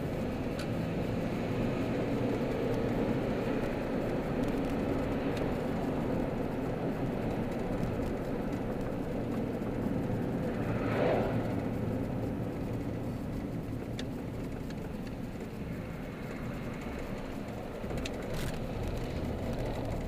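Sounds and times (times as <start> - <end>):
car engine and road noise: 0.0 - 20.0.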